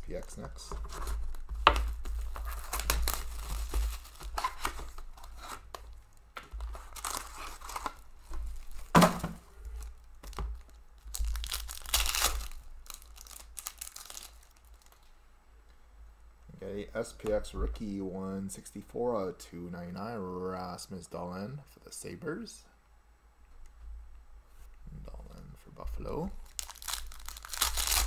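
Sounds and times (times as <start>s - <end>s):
cards rustling: 0.1s - 15.1s, 26.4s - 28.0s
foil wrapper ripping and crinkling: 1.1s - 8.9s, 9.7s - 15.1s, 26.4s - 28.0s.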